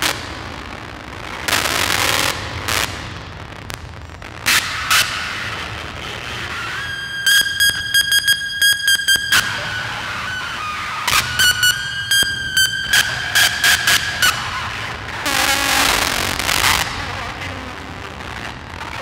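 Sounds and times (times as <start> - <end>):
sustained high squealing tone: 6.5 - 16.8.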